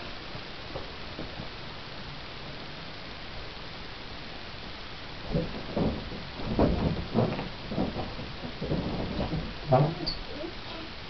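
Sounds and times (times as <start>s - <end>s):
low rumbling thumps: 0.0s - 11.0s.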